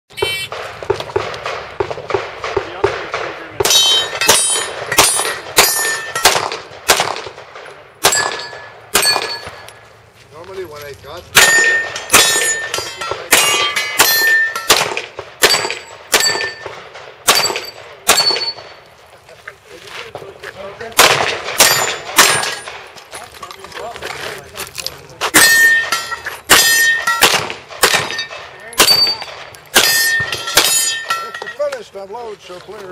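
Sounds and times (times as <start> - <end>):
rapid handgun shots: 0.4 - 9.7, 11.3 - 18.8, 20.8 - 23.0, 25.3 - 31.1
steel targets clanging: 3.6 - 6.6, 8.0 - 9.7, 11.4 - 18.8, 21.6 - 22.9, 25.3 - 31.9.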